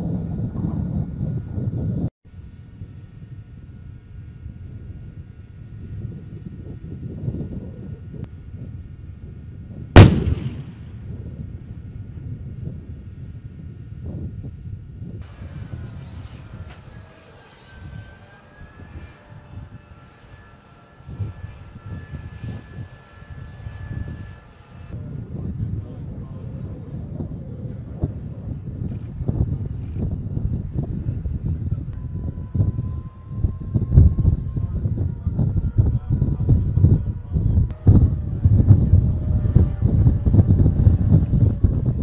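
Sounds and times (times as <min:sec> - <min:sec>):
high steady whine: 0:10.0 - 0:11.1
tank gun blast: 0:10.0 - 0:11.1
low rumble: 0:10.0 - 0:11.6, 0:29.4 - 0:42.0.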